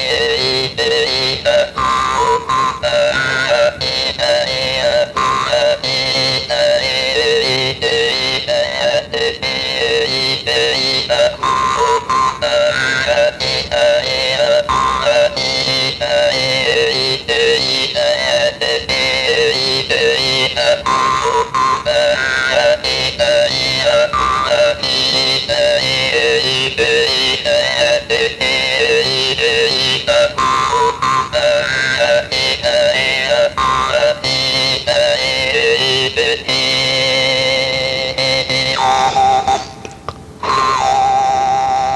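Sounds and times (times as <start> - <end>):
jaw harp buzzing phrases: 0.0 - 41.9.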